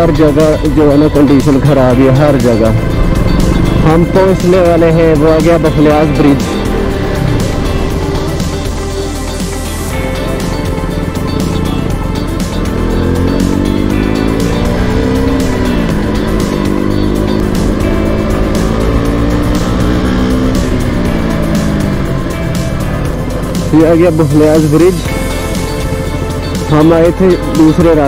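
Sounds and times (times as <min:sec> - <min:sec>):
background music: 0:00.0 - 0:28.0
motorcycle engine running: 0:00.0 - 0:28.0.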